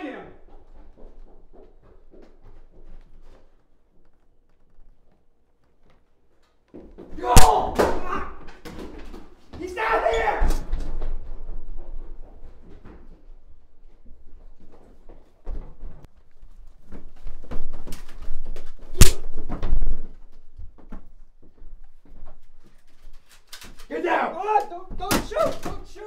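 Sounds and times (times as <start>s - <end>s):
knocks and scuffling footsteps: 0.0s - 26.0s.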